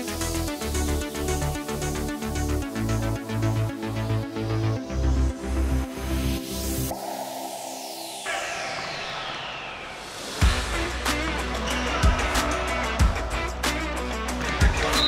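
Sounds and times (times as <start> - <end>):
falling synth sweep: 6.4 - 11.0
dance beat with bass kicks: 12.0 - 13.6.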